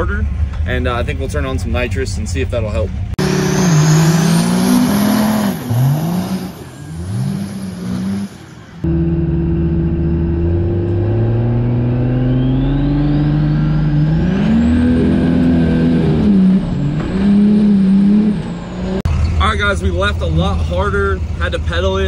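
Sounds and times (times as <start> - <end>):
diesel truck engine revving: 0.0 - 22.0
turbo whine rising: 3.2 - 19.0.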